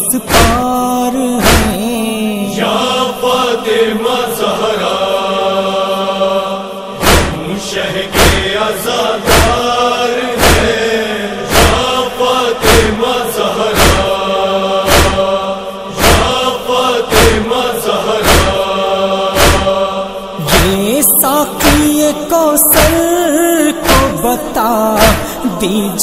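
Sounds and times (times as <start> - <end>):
chorus chanting a drone: 0.0 - 26.0
chest-beating slaps: 0.3 - 0.6, 1.4 - 1.8, 7.0 - 7.5, 8.1 - 8.6, 9.2 - 9.7, 10.4 - 10.8, 11.5 - 11.9, 12.6 - 13.0, 13.7 - 14.2, 14.8 - 15.3, 16.0 - 16.5, 17.1 - 17.4, 18.2 - 18.7, 19.3 - 19.8, 20.5 - 20.8, 21.6 - 22.0, 22.7 - 23.1, 23.8 - 24.2, 25.0 - 25.4.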